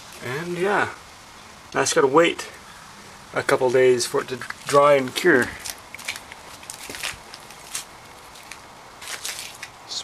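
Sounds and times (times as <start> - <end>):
light footsteps: 3.5 - 9.8.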